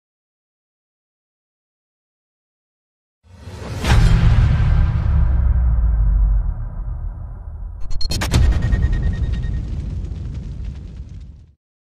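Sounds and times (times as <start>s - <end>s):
deep cinematic rumble: 3.9s - 11.4s.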